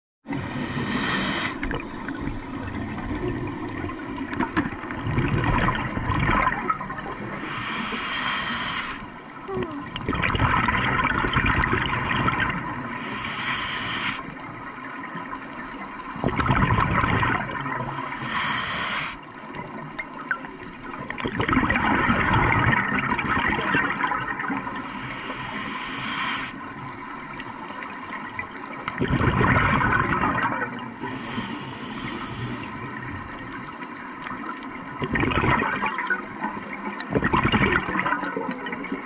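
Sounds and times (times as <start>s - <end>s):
regulator inhalation hiss: 0.3s - 1.7s, 7.2s - 9.2s, 12.8s - 14.3s, 17.8s - 19.2s, 24.6s - 26.6s, 31.0s - 32.9s
exhaled bubbles gurgling: 0.3s - 39.0s.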